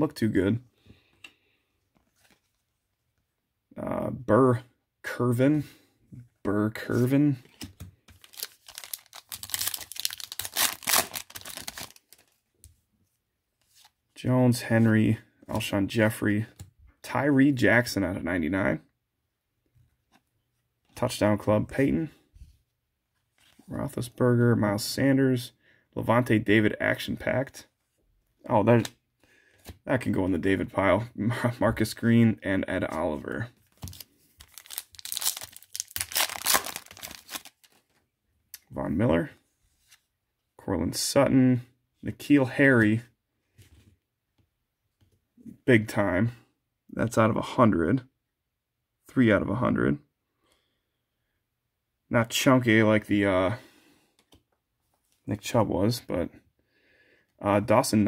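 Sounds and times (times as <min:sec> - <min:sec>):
wrapper tearing and crinkling: 0:08.2 - 0:12.3, 0:33.8 - 0:37.8.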